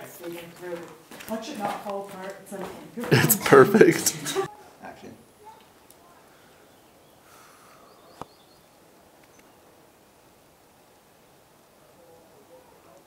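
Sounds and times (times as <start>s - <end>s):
faint outdoor ambience: 0.0s - 13.0s.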